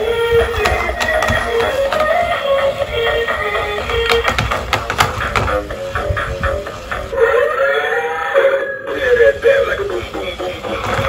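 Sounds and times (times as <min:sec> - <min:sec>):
dance song from toy speaker: 0:00.0 - 0:07.4, 0:08.8 - 0:11.0
voice-like melody: 0:07.1 - 0:10.8.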